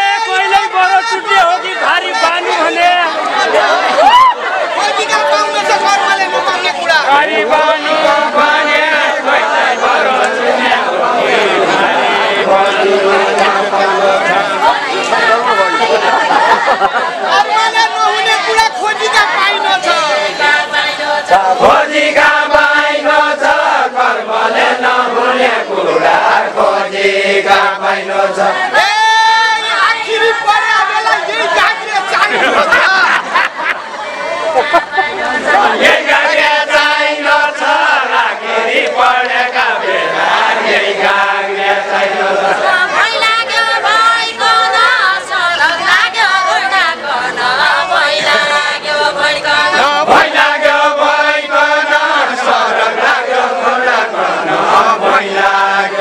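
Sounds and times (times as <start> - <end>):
group singing folk song: 0.0 - 56.0
men chanting together: 4.6 - 33.2, 35.4 - 56.0.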